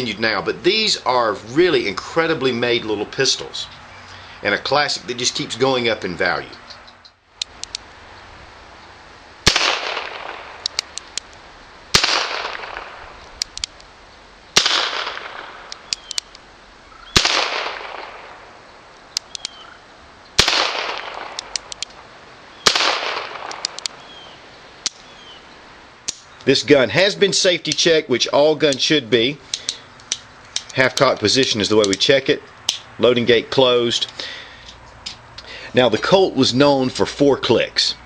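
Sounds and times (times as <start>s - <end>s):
revolver gunshots with echo: 9.4s - 10.6s, 11.9s - 13.1s, 14.6s - 15.9s, 17.1s - 18.5s, 20.4s - 21.5s, 22.6s - 23.8s
revolver hammer cocking clicks: 9.5s - 11.4s, 12.0s - 13.9s, 14.6s - 16.4s, 19.1s - 19.6s, 20.4s - 22.0s, 22.7s - 24.0s.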